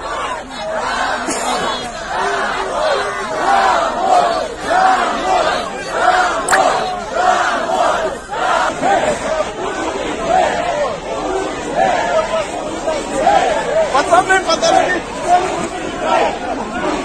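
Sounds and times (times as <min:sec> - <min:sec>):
crowd of protesters shouting: 0:00.0 - 0:17.0.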